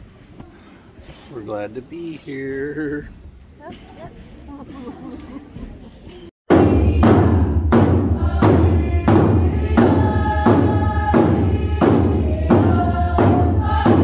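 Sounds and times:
frame drums beating: 6.5 - 14.0
group chanting together: 6.5 - 14.0.

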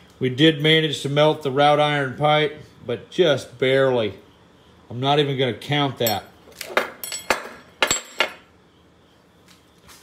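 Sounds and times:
metal clinking on steel workbench: 6.0 - 8.5.

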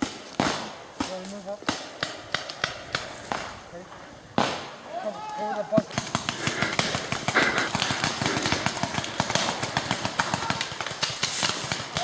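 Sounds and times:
paintball guns popping: 0.0 - 3.5, 5.8 - 12.0.

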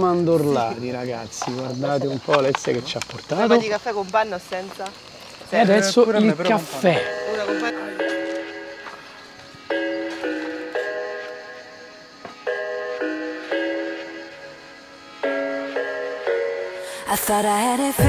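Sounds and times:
slow ringing background tune: 6.8 - 18.0.

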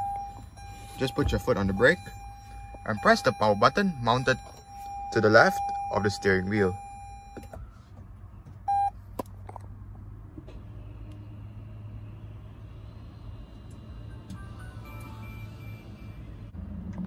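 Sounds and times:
low cabin hum: 0.0 - 8.9.

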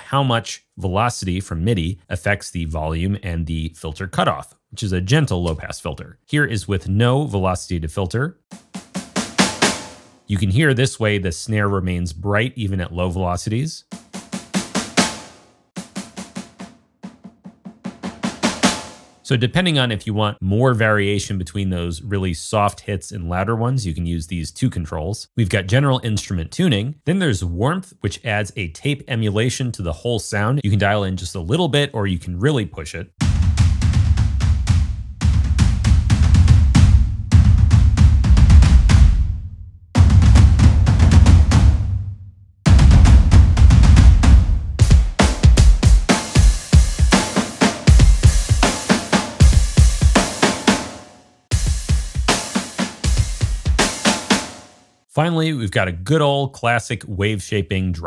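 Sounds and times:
processed snare drum runs: 8.5 - 10.2, 13.9 - 19.2, 33.2 - 39.3, 40.0 - 42.0, 42.7 - 54.7.

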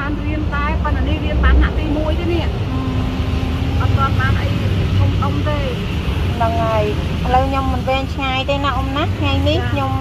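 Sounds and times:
steady low rumble: 0.0 - 10.0
woman speaking: 0.0 - 10.0.

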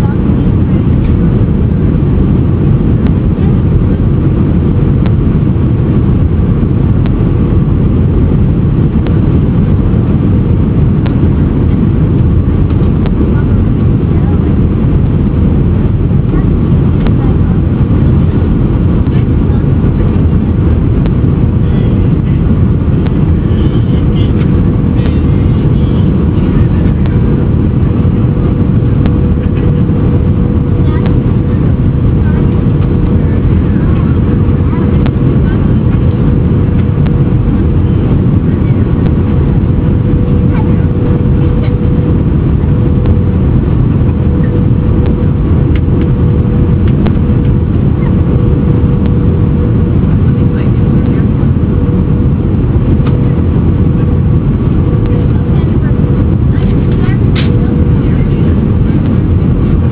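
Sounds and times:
jet engines rumbling: 0.0 - 59.9
thin steady hum: 0.0 - 59.9.

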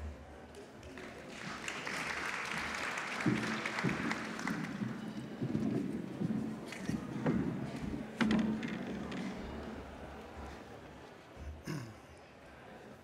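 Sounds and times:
audience applauding: 0.8 - 5.4.

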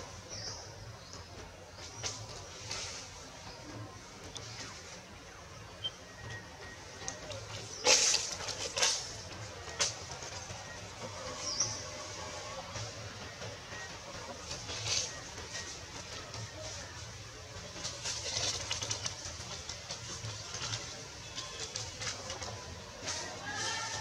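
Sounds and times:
outdoor ambience with high hiss: 0.0 - 24.0.

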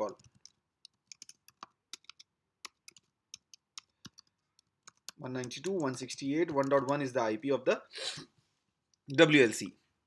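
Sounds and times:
typing on computer keyboard: 0.0 - 7.1.

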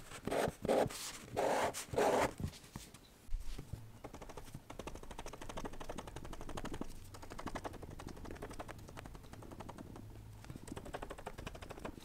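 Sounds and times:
pen scratching on paper: 0.2 - 2.3.

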